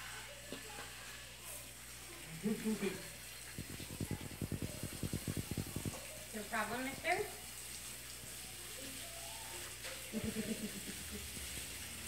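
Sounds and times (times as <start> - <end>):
garden hose spraying water: 0.0 - 12.0
low vocal sounds: 3.6 - 6.0.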